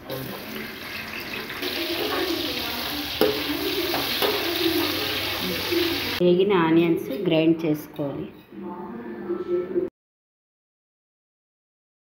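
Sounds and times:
onions sizzling in hot oil: 0.0s - 6.2s.

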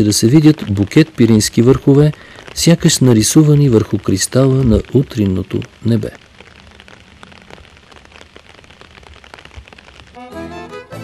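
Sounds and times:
faint even hiss: 0.0s - 11.0s
small light crackles and clicks: 0.0s - 11.0s.

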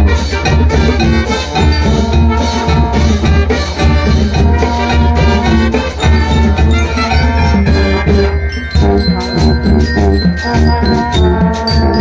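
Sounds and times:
steady drum beat: 0.0s - 12.0s
trombones and trumpets playing chords: 0.0s - 12.0s.

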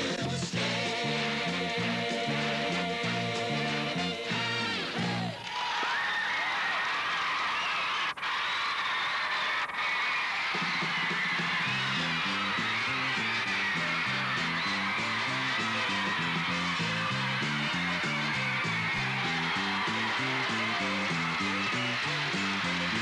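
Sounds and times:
rock and roll band music: 0.0s - 5.4s, 10.4s - 23.0s
walking bass line: 11.6s - 23.0s.

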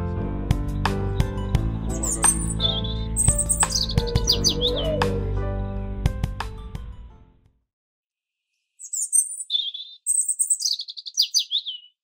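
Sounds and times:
songbird singing: 0.7s - 5.4s, 8.7s - 12.0s.

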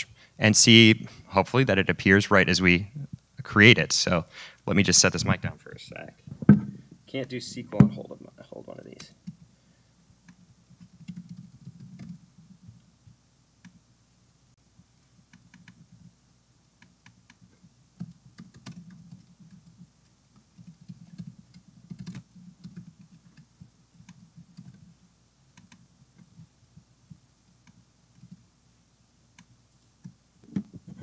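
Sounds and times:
typing on computer keyboard: 10.3s - 12.2s, 15.3s - 16.1s, 18.0s - 24.9s, 25.6s - 26.5s, 27.6s - 28.4s.

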